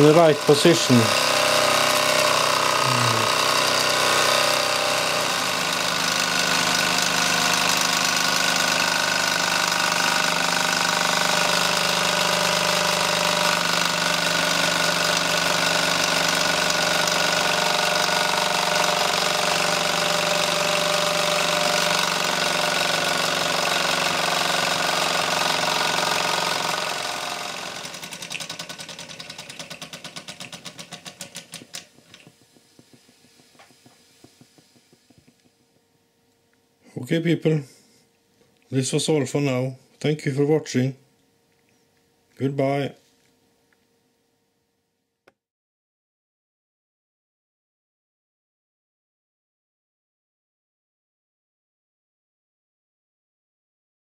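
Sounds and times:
toy steam engine buzzing exhaust: 0.0s - 35.5s.

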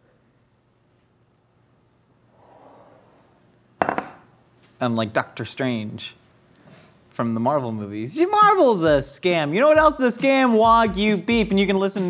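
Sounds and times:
glass bowls clinking: 3.8s - 4.3s.

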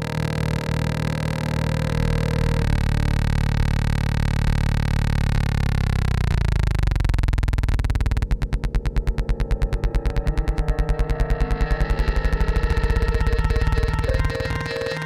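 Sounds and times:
sustained synthesizer tone: 0.0s - 15.0s.

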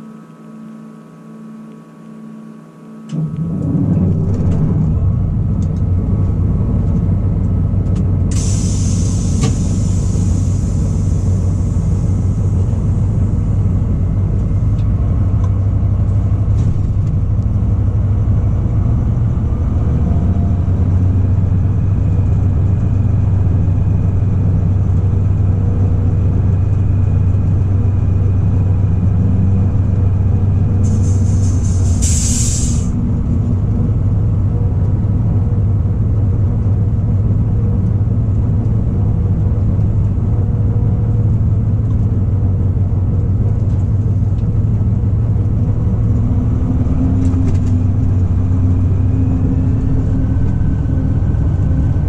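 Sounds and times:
locomotive diesel engine running: 3.1s - 52.0s.

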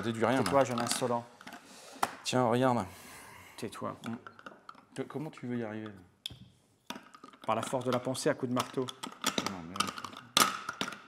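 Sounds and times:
plastic puzzle pieces clicking: 6.9s - 11.0s.

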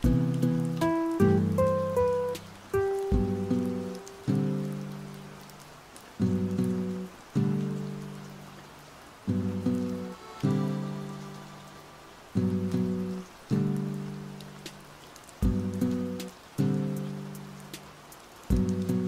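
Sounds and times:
plucked guitar-like chords: 0.0s - 4.8s, 9.3s - 14.2s
faint hiss: 0.0s - 19.0s.

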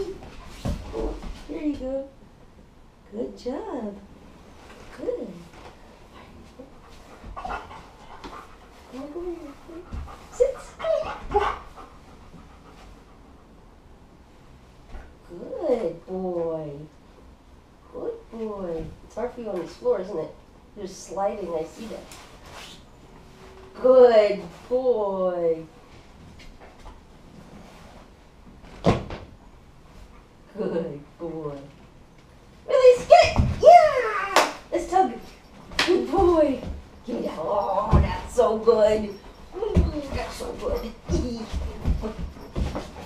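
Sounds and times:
dog panting: 6.6s - 13.7s.

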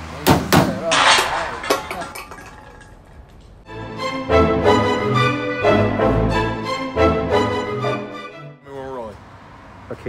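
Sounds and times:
sharp metallic clanks: 0.4s - 3.2s
music: 3.7s - 8.7s.

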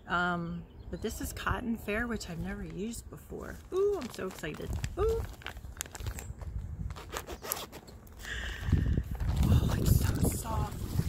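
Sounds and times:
zip-top bag zipper crackling: 6.9s - 8.0s.

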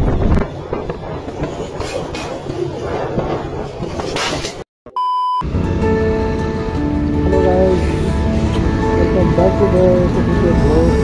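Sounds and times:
rushes of air: 0.0s - 4.6s
wind and road noise: 0.0s - 4.7s, 5.4s - 11.0s.

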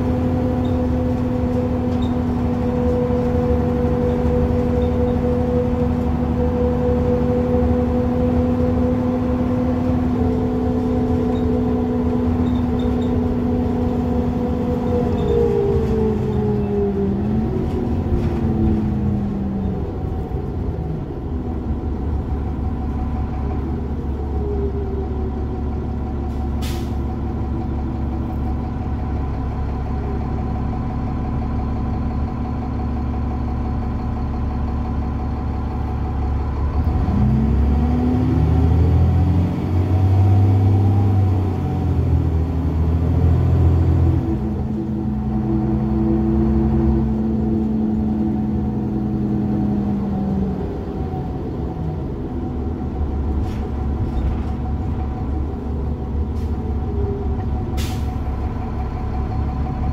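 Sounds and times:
bus diesel engine drone: 0.0s - 59.9s.

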